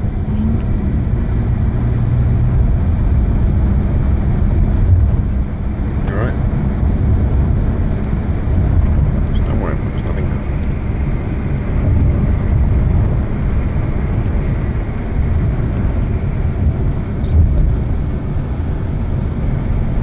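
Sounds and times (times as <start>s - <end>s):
road and wind noise in car: 0.0s - 20.0s.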